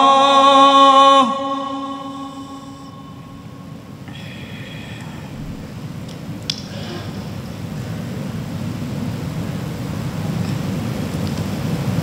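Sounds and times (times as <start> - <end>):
man reciting in long held note: 0.0 - 6.0
low room murmur: 2.1 - 12.0.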